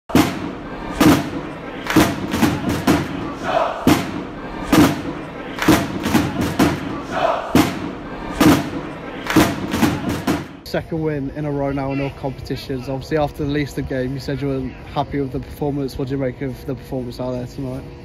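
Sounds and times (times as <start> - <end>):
crowd shouting: 0.1 - 10.6
heavy drum hits: 0.1 - 10.6.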